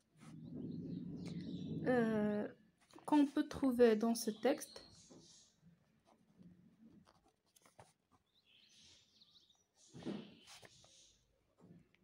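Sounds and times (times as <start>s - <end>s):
pen scratching on paper: 7.0s - 8.1s.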